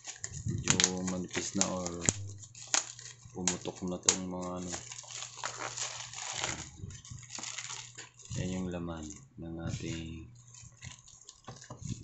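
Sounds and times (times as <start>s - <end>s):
bubble wrap crackles: 0.0s - 12.0s
bubble wrap crinkling: 0.0s - 12.0s.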